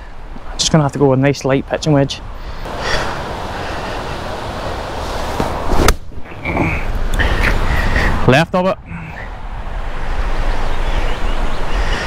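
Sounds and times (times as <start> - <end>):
wind hiss: 1.8 - 12.0.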